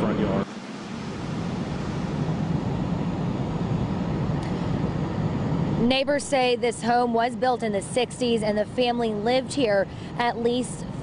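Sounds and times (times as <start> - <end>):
fire rumbling: 0.0 - 11.0.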